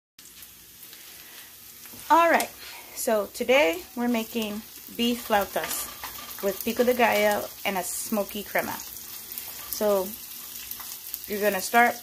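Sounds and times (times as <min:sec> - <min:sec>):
soft crackles and clicks: 0:00.2 - 0:02.6, 0:08.5 - 0:12.0
faint steady hiss: 0:00.2 - 0:12.0.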